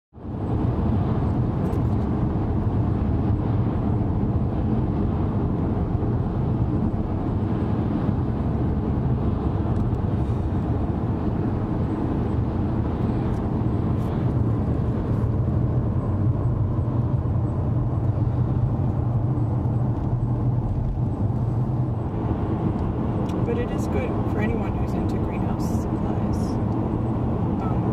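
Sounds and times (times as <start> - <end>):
car road and engine noise: 0.1 - 27.9.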